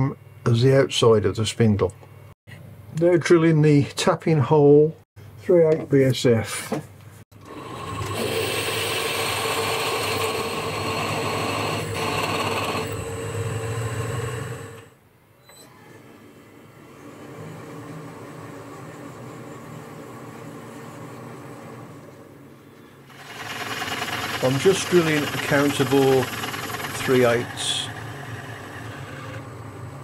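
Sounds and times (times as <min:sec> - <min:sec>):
lathe drilling workpiece: 0:07.4 - 0:15.0, 0:23.1 - 0:29.7
machine hum: 0:07.4 - 0:15.1, 0:16.4 - 0:30.0.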